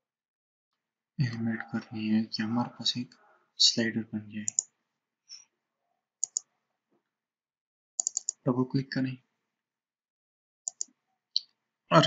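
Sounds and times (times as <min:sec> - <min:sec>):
mouse button clicks: 0:06.2 - 0:06.5, 0:08.0 - 0:08.4.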